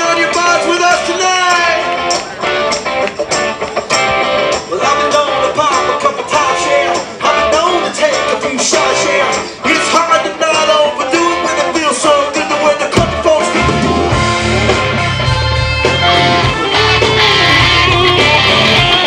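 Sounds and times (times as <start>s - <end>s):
country rock band playing: 0.0s - 19.0s.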